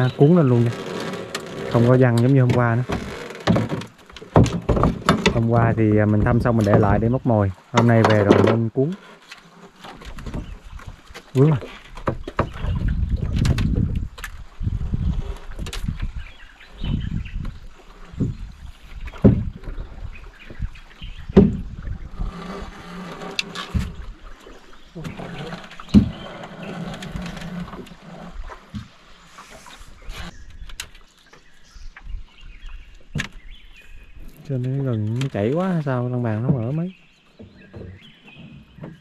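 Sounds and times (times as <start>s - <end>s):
knocks and thumps on boat: 0.0s - 29.0s, 33.0s - 33.6s, 34.4s - 39.0s.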